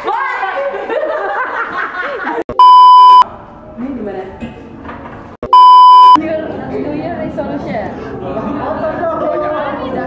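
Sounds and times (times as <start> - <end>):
people laughing: 0.2 - 2.4
high-pitched electronic beep: 2.5 - 3.2, 5.5 - 6.2.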